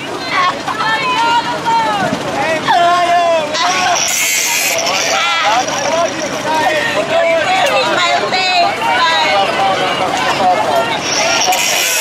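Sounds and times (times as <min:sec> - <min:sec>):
people's raised voices: 0:00.0 - 0:12.0
angle grinder cutting: 0:03.6 - 0:06.4, 0:11.0 - 0:12.0.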